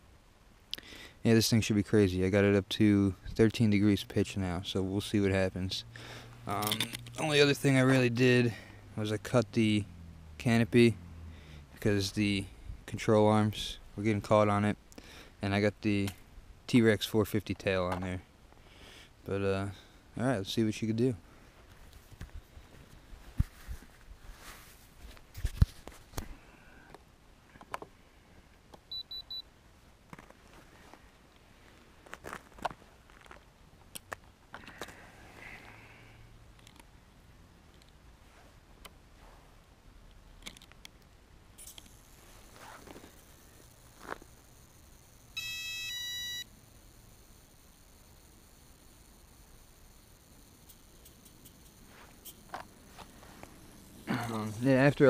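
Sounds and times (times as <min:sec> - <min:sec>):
electronic start-up beeps: 0:44.5 - 0:47.4.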